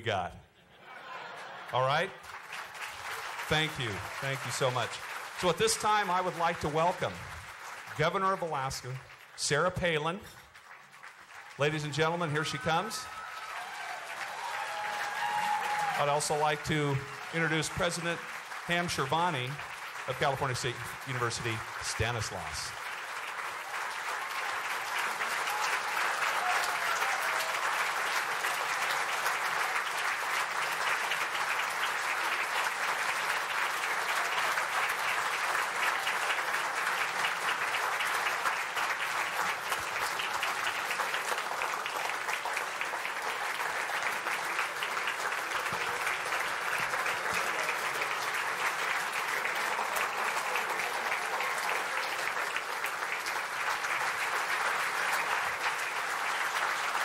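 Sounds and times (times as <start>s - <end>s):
crowd applauding: 0.7s - 57.0s.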